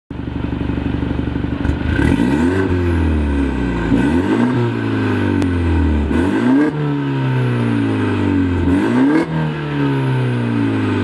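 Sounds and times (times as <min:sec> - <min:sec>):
car engine idling burble: 0:00.1 - 0:04.0.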